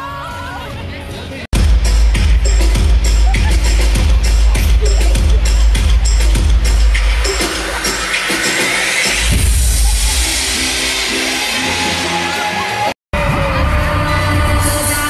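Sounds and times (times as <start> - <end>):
live pop music over pa: 1.6 - 15.0
crowd cheering: 7.1 - 15.0
live singing with band: 12.4 - 15.0.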